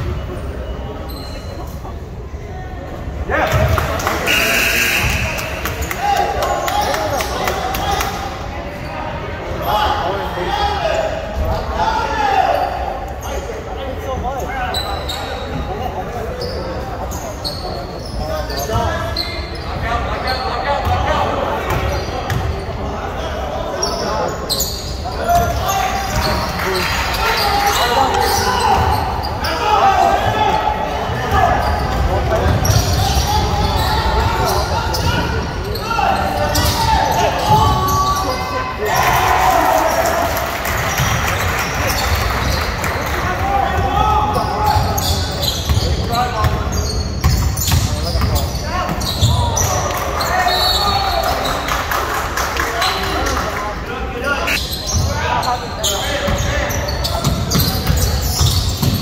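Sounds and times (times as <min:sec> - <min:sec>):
people calling and shouting: 0:00.0 - 0:51.8.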